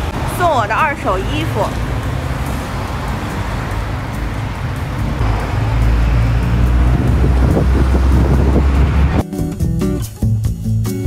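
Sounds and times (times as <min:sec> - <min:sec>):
road traffic going by: 0:00.0 - 0:09.2
wind rumbling on microphone: 0:01.8 - 0:09.2.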